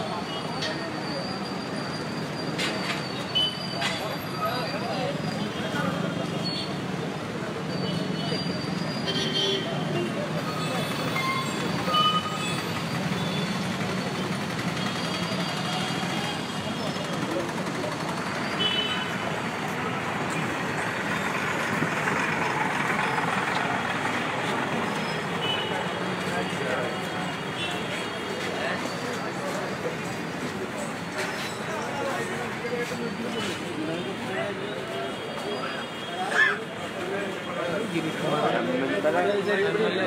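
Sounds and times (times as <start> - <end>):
crowd talking: 0.0 - 40.0
road traffic: 0.0 - 40.0.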